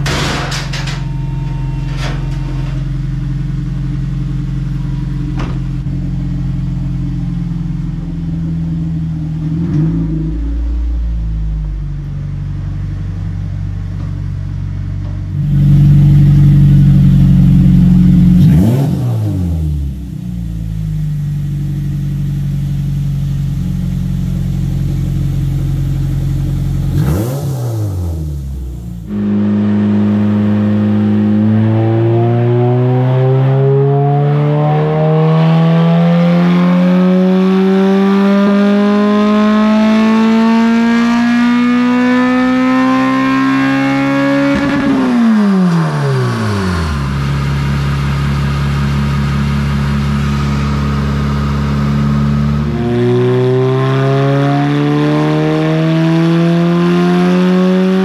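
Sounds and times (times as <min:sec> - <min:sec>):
car engine on dyno: 0:00.0 - 0:58.0.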